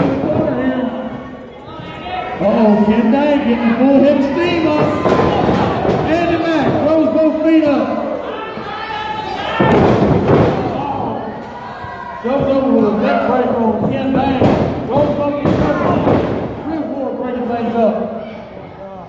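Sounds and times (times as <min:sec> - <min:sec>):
voices shouting: 0:08.2 - 0:09.9.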